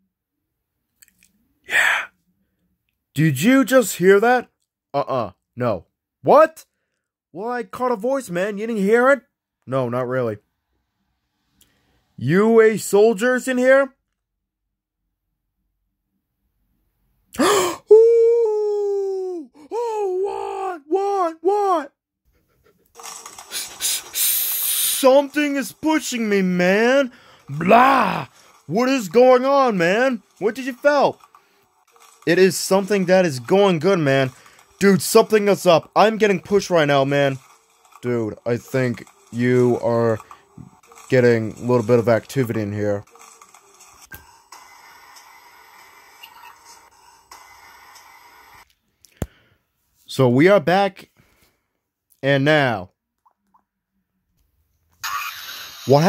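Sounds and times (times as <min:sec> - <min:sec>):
person crying ooooo: 0:17.4 - 0:21.7
hissing noise: 0:23.4 - 0:25.0.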